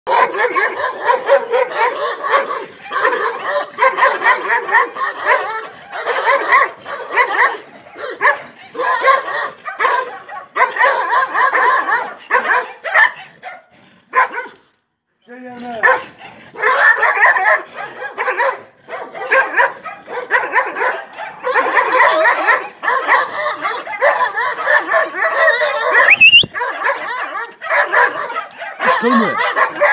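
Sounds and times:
dogs barking and yelping: 0.1s - 14.8s, 15.6s - 29.9s
man calling to dogs: 25.8s - 29.6s.

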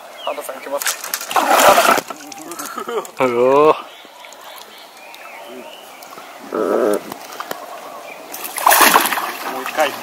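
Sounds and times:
fish splashing at surface: 8.3s - 9.8s.

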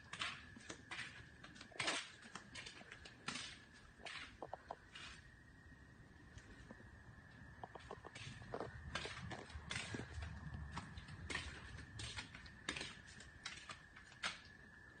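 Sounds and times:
footsteps on concrete floor: 0.0s - 5.4s, 6.3s - 14.9s.

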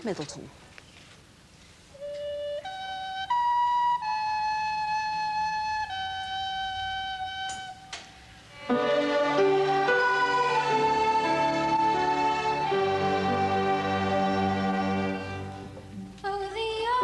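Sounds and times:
recorders playing melody: 2.0s - 7.9s, 8.5s - 16.2s
orchestra playing: 8.5s - 16.2s.

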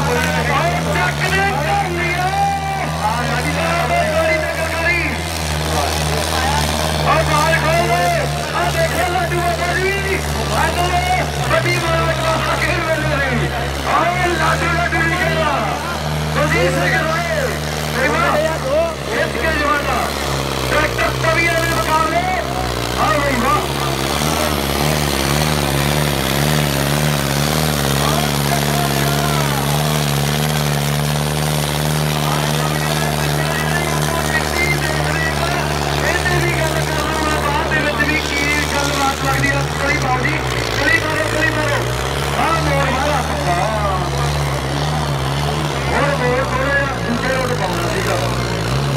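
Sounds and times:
person speaking loudly: 0.0s - 30.5s, 32.0s - 48.6s
tractor engine running: 0.0s - 48.9s.

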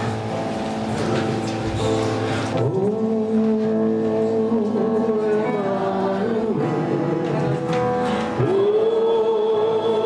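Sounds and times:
acoustic guitars: 0.0s - 10.0s
keyboard holding chords: 0.0s - 10.0s
person singing a long note: 2.5s - 10.0s.

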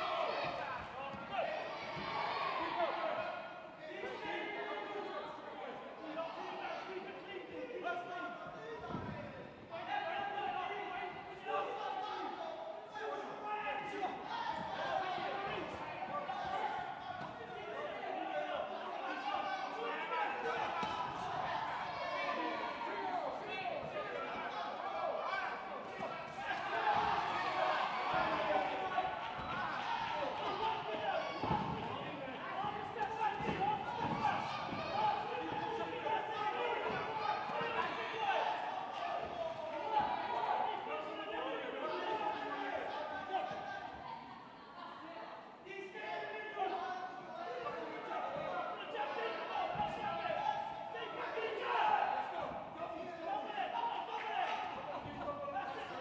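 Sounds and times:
spectators and cornermen shouting: 0.0s - 44.9s, 45.7s - 56.0s.

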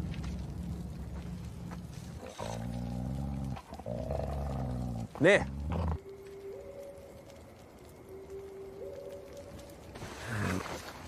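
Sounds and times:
low rumble: 0.0s - 3.8s.

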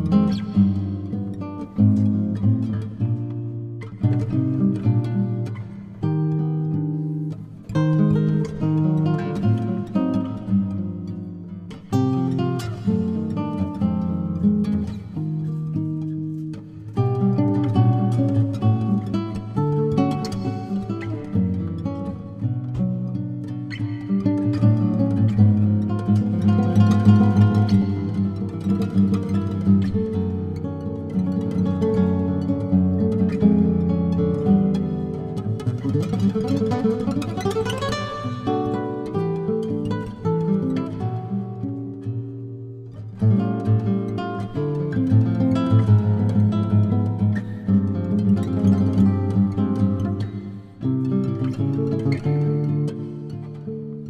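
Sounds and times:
fingerstyle nylon-string guitar: 0.0s - 54.0s.

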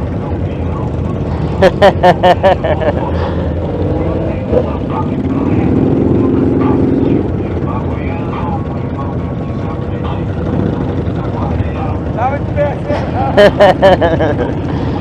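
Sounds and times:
motorcycle engines rumbling: 0.0s - 15.0s.

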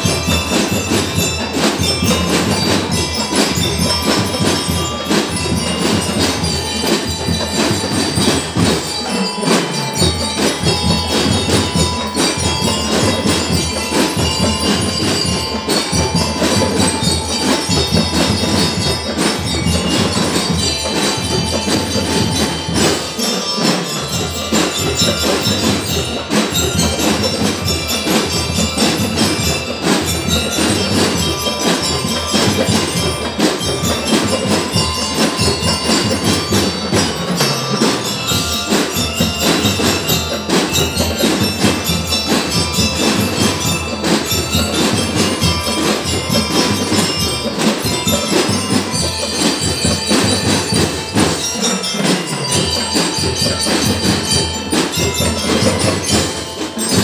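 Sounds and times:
bell lyres ringing melody: 0.0s - 57.0s
drum percussion: 0.0s - 57.0s.

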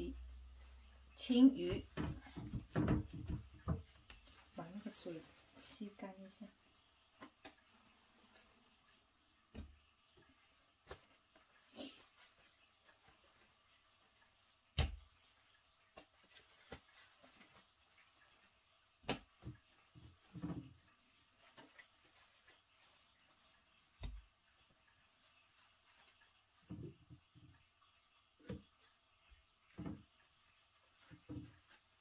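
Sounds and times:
paper towels rustling: 15.9s - 18.7s, 20.9s - 24.0s.

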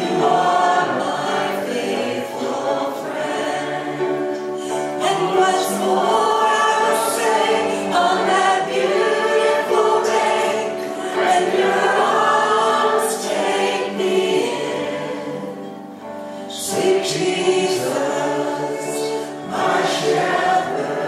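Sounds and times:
acoustic guitar: 0.0s - 21.0s
group singing gospel song: 0.0s - 21.0s.

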